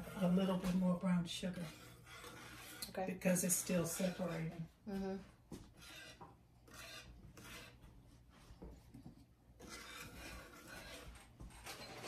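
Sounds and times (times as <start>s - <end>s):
whisk scraping a pan: 0.0s - 4.9s, 5.5s - 8.9s, 9.5s - 12.0s.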